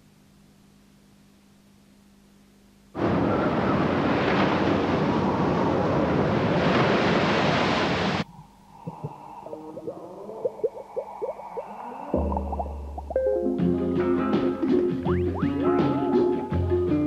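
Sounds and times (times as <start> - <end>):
rush of surging water: 3.0 - 8.2
faint steady tone: 8.2 - 13.7.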